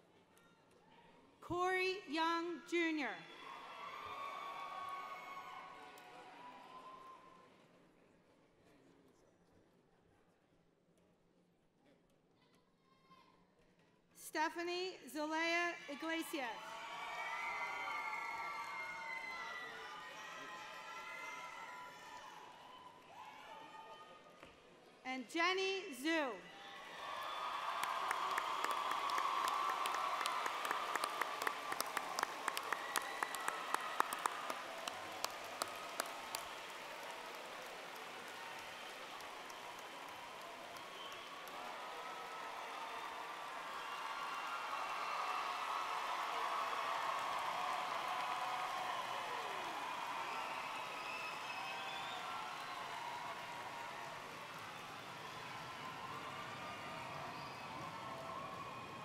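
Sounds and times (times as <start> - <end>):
crowd applauding and cheering: 3.2 - 7.5, 15.9 - 24.2, 26.5 - 59.0.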